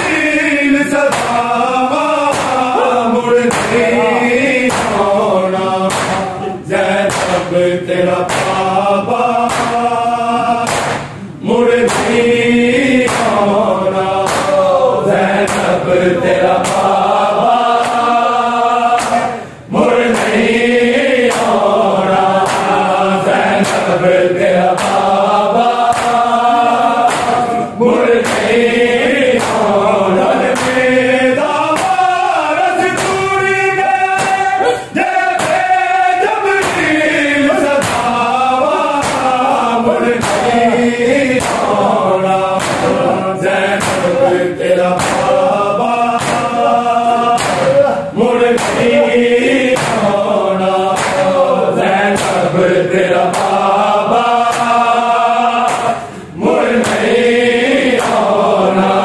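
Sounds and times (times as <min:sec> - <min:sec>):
men chanting in unison: 0:00.0 - 0:59.0
hands slapping chests: 0:01.1 - 0:01.6, 0:02.2 - 0:02.8, 0:03.5 - 0:04.0, 0:04.6 - 0:05.2, 0:05.9 - 0:06.4, 0:07.0 - 0:07.5, 0:08.2 - 0:08.7, 0:09.4 - 0:09.9, 0:10.6 - 0:11.2, 0:11.8 - 0:12.3, 0:13.0 - 0:13.5, 0:14.2 - 0:14.7, 0:15.4 - 0:15.8, 0:16.4 - 0:17.0, 0:17.6 - 0:18.2, 0:18.9 - 0:19.4, 0:20.0 - 0:20.5, 0:21.2 - 0:21.7, 0:22.4 - 0:22.9, 0:23.5 - 0:24.0, 0:24.6 - 0:25.2, 0:25.8 - 0:27.6, 0:28.2 - 0:28.6, 0:29.3 - 0:29.8, 0:30.5 - 0:30.9, 0:31.7 - 0:32.1, 0:34.2 - 0:34.5, 0:35.4 - 0:35.8, 0:36.6 - 0:41.8, 0:42.5 - 0:46.6, 0:47.3 - 0:47.8, 0:48.6 - 0:49.0, 0:49.6 - 0:50.2, 0:50.8 - 0:51.4, 0:52.0 - 0:52.5, 0:53.2 - 0:53.7, 0:54.4 - 0:54.8, 0:55.6 - 0:56.0, 0:56.7 - 0:57.2, 0:57.8 - 0:58.3.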